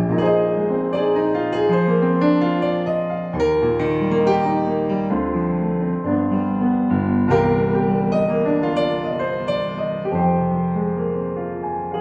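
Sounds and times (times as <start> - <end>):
piano playing slow chords: 0.0 - 12.0.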